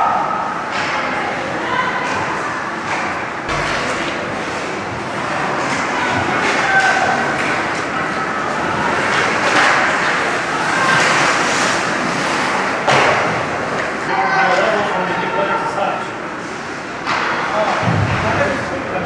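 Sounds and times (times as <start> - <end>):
sharp bang: 3.5 - 5.5
hockey sticks and puck clacking: 9.0 - 14.0, 17.0 - 18.2.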